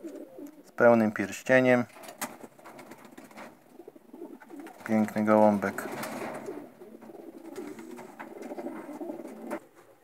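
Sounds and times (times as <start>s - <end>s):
pigeons cooing: 0.0s - 0.8s, 2.1s - 10.0s.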